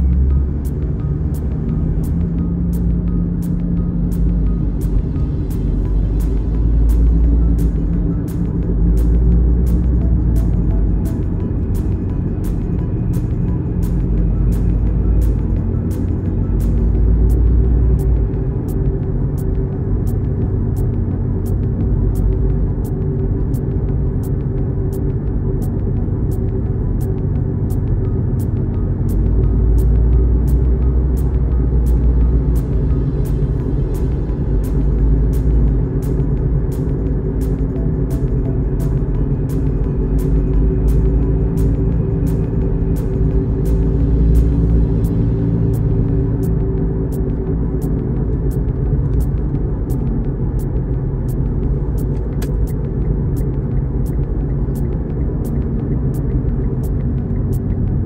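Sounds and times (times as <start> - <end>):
car cabin rumble: 0.0 - 58.0
music with steady beat: 0.0 - 58.0.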